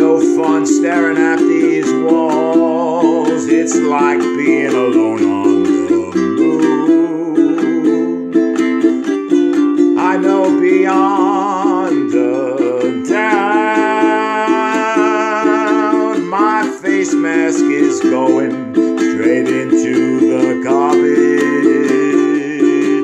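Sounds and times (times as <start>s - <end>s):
man singing with vibrato: 0.0s - 23.0s
ukulele strumming: 0.0s - 23.0s.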